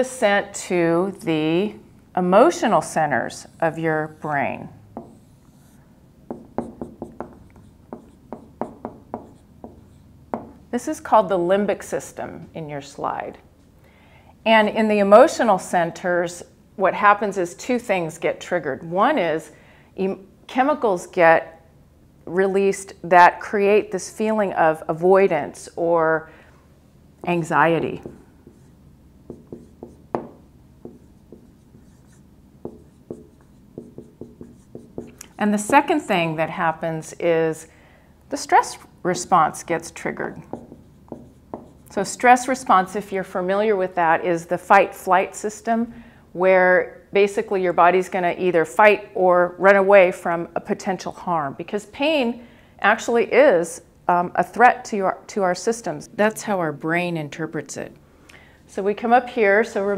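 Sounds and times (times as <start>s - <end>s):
marker writing on whiteboard: 2.8s - 10.6s, 27.7s - 36.2s, 39.2s - 42.6s.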